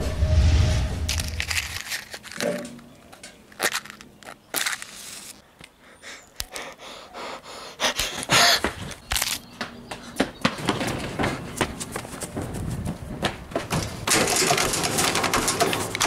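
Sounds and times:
matches striking a matchbox: 1.1s - 2.8s, 3.5s - 5.8s.

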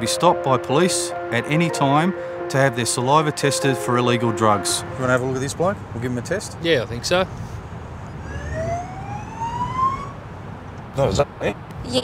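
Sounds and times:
police siren wail: 8.2s - 10.3s.

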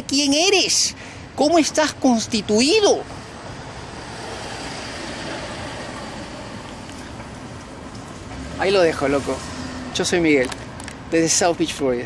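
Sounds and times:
passing vehicles: 0.0s - 12.0s.

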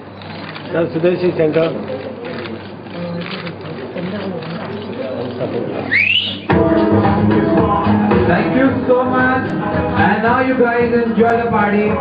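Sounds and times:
crowd chatter: 0.0s - 12.0s
sharp rising whistle: 5.9s - 6.5s.

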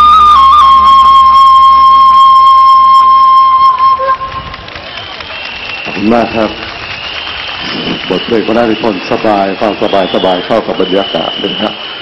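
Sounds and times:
flute holding high note: 0.0s - 6.5s.

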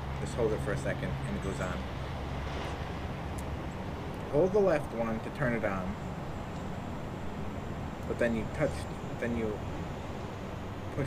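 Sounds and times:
road traffic: 0.0s - 11.0s.

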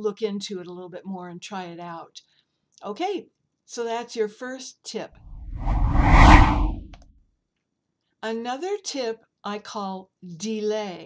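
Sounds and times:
whoosh with deep rumble: 5.3s - 7.0s.

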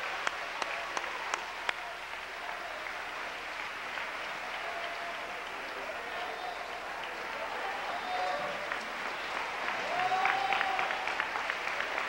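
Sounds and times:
congregation applauding: 0.0s - 12.0s.

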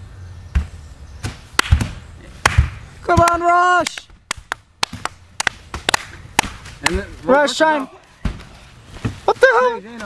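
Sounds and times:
sharp smacks: 0.6s - 7.0s.

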